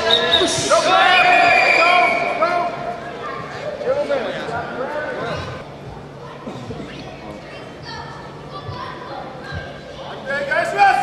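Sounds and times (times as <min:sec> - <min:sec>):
voices shouting in a hall: 0:00.0 - 0:05.6, 0:07.6 - 0:11.0.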